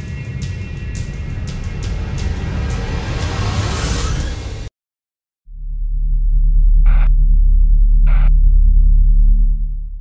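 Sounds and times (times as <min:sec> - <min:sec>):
electronic bass drone: 0:05.5 - 0:10.0.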